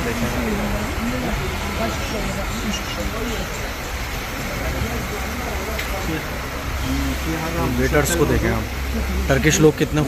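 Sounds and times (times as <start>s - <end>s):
faint voices: 0.0s - 10.0s
road traffic: 0.0s - 10.0s.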